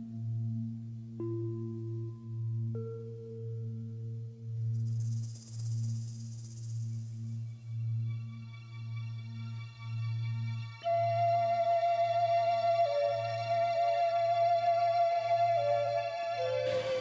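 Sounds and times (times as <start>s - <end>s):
held musical notes: 11.4s - 17.0s
low drone: 16.5s - 17.0s.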